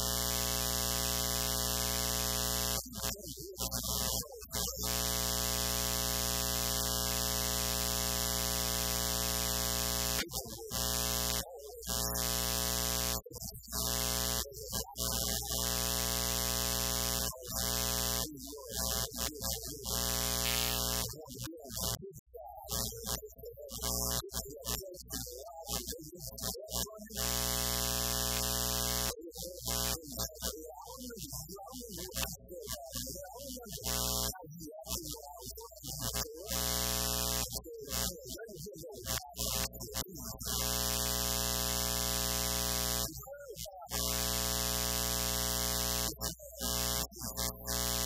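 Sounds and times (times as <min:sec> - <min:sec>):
electrical buzz with hiss: 0:20.0 - 0:21.1.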